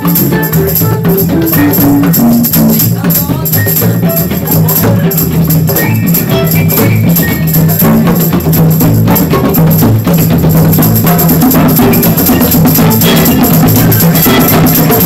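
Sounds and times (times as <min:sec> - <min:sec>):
hand drums beating: 0:00.0 - 0:15.0
violin melody: 0:00.0 - 0:15.0.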